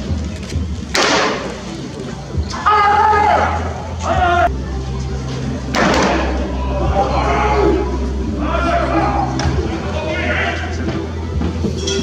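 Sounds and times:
man shouting: 2.6 - 4.5, 6.8 - 10.8.

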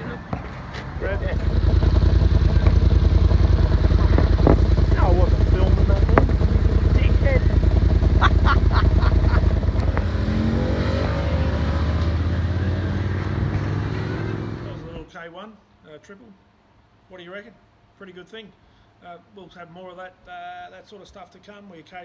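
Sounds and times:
motorcycle engine accelerating: 0.9 - 15.0.

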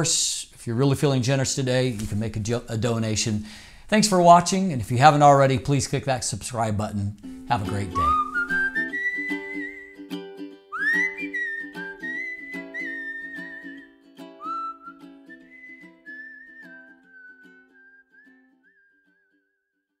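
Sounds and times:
plucked strings: 7.2 - 18.3
whistled melody: 7.3 - 19.5.

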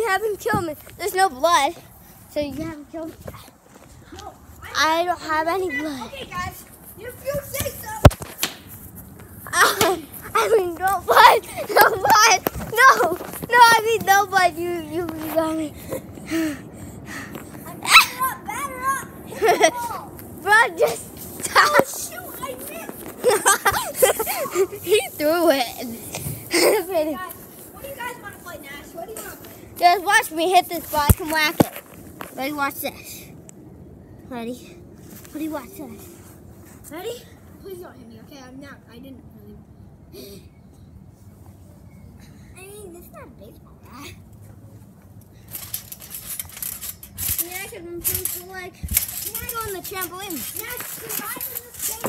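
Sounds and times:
children calling out and chattering: 0.0 - 40.7, 42.0 - 52.0
child calling out: 17.6 - 20.1.

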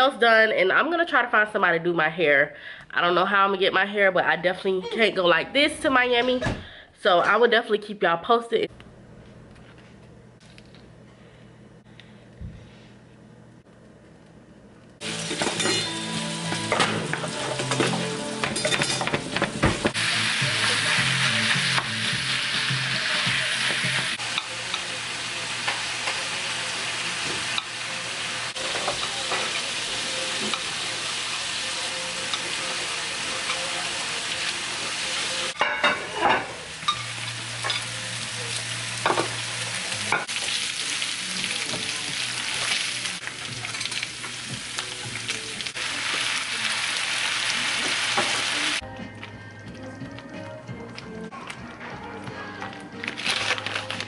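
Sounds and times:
meat sizzling in a frying pan: 19.4 - 35.6, 36.5 - 48.8.

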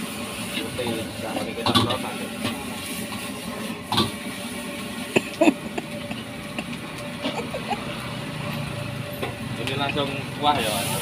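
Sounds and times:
food sizzling in a wok: 0.0 - 5.0, 10.3 - 11.0
gas burner roar: 0.0 - 11.0.

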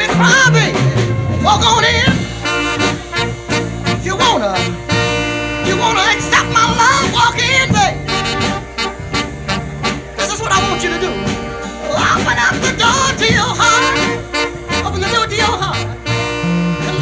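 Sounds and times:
bending melodic lead line: 0.0 - 17.0
soul band playing: 0.0 - 17.0.

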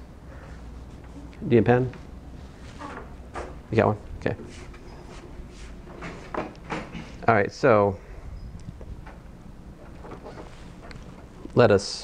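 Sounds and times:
steady low rumble: 0.0 - 12.0
faint rustles: 4.1 - 7.2, 8.0 - 11.6.

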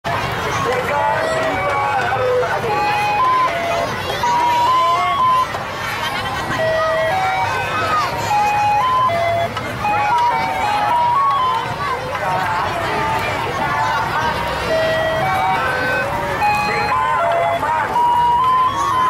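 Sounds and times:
crowd of children chattering: 0.0 - 19.0.

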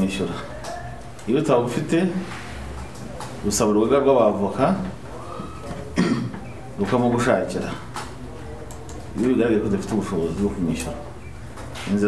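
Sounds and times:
man speaking: 0.0 - 2.3, 3.2 - 6.0, 6.6 - 11.2
person coughing: 6.0 - 6.4.

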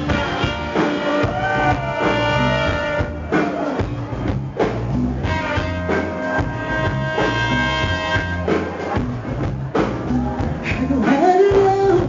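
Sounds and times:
bass guitar: 0.0 - 12.0
drum kit: 0.0 - 12.0.

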